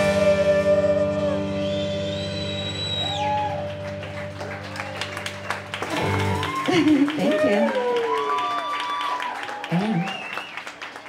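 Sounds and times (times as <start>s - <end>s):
audience clapping: 2.9s - 11.0s.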